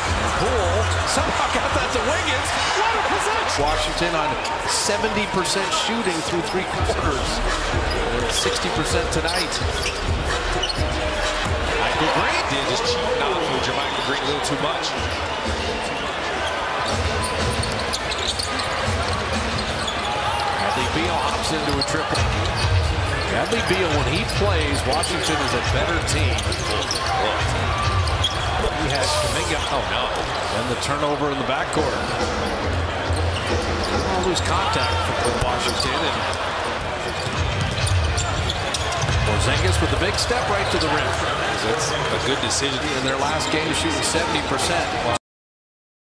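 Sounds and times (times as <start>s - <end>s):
arena crowd noise: 0.0s - 45.2s.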